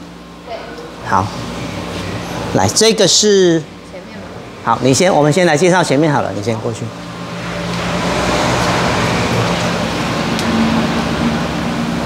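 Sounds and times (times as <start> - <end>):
low mechanical hum: 0.0 - 12.0
steady rushing noise: 4.7 - 12.0.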